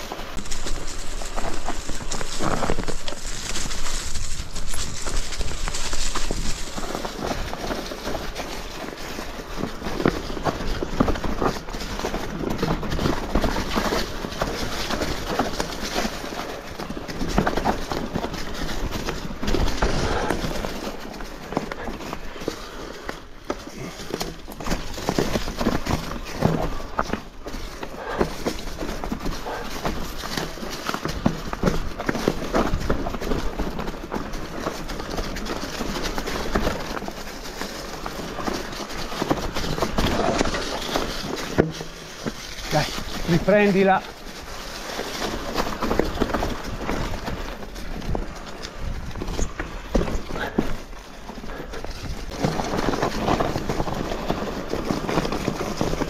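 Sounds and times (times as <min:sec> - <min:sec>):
mountain bike clattering over rocks: 0:00.0 - 0:56.0.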